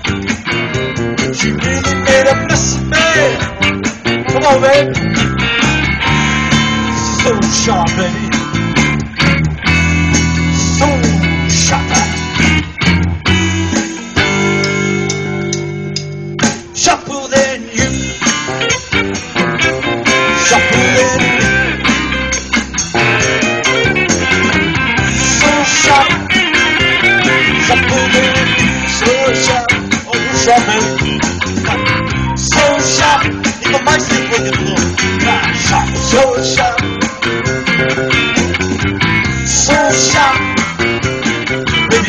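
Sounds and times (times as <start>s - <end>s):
bass guitar: 0.0s - 42.0s
drums: 0.0s - 42.0s
electric guitars: 0.0s - 42.0s.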